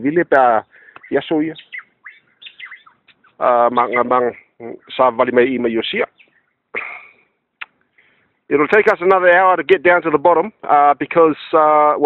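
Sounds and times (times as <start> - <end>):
man speaking: 0.0 - 1.6, 3.4 - 6.1, 8.5 - 12.0
bird chirping: 0.0 - 7.0.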